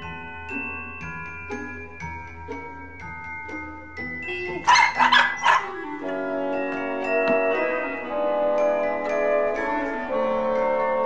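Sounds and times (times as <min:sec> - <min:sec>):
music with bell-like tones: 0:00.0 - 0:11.0
dog barking: 0:04.6 - 0:05.8.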